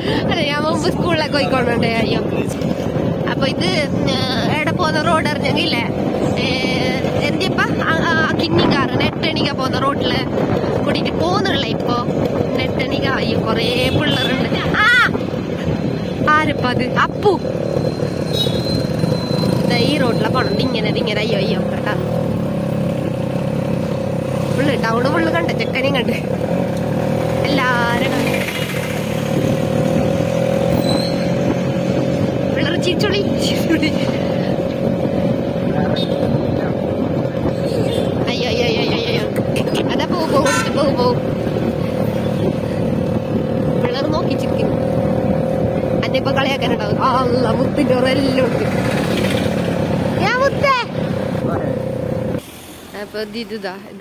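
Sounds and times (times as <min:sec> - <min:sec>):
motorcycle engine running: 0:00.0 - 0:54.0
road and wind noise: 0:00.0 - 0:54.0.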